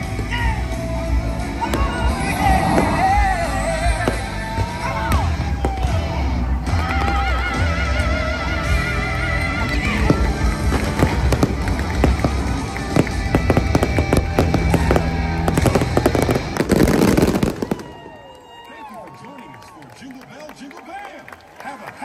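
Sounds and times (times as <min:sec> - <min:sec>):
fireworks bangs and crackling: 0:00.0 - 0:07.9, 0:09.4 - 0:18.3
loud show music: 0:00.0 - 0:17.8
crowd voices: 0:00.0 - 0:22.0.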